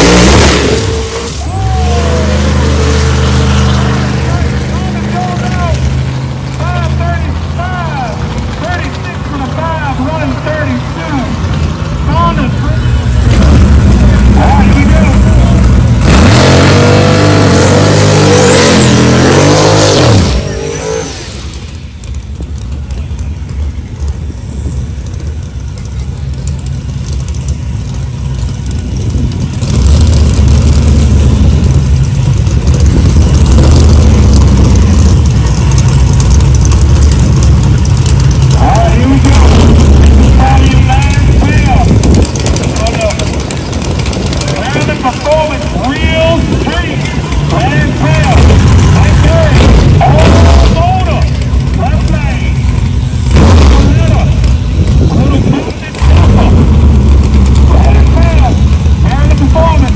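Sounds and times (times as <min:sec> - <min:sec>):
engine revving high: 0:00.0 - 0:05.8, 0:13.2 - 0:21.6, 0:47.5 - 0:52.5, 0:53.2 - 0:54.5
deep engine rumble: 0:00.0 - 0:59.9.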